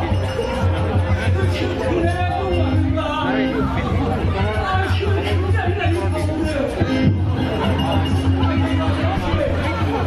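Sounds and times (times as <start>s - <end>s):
music playing: 0.0s - 10.0s
man speaking over public address: 1.2s - 10.0s.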